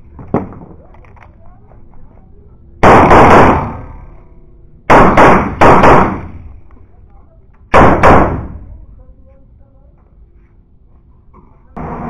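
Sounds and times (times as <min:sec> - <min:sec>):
pistol shots echoing indoors: 0:02.8 - 0:04.0, 0:04.9 - 0:06.4, 0:07.7 - 0:08.6.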